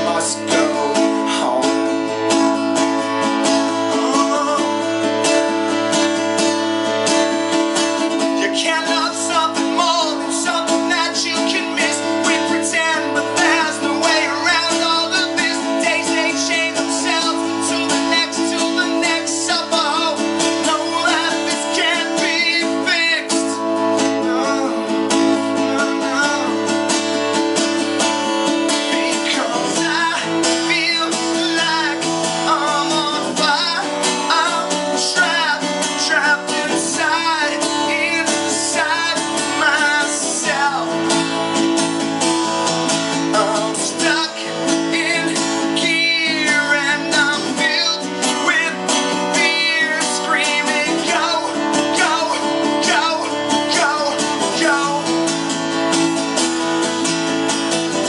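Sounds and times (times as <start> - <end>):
man singing: 0.0 - 56.0
acoustic guitar strumming: 0.0 - 58.0.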